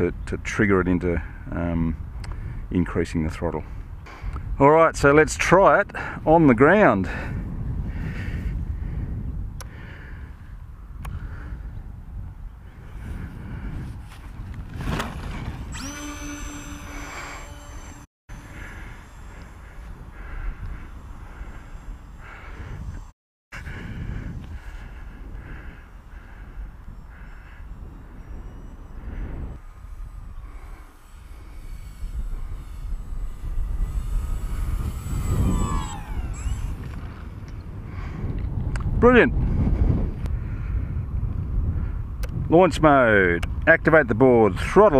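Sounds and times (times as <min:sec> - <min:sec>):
wind buffeting microphone: 0:00.0 - 0:44.9
model plane electric motor whine: 0:13.0 - 0:38.5.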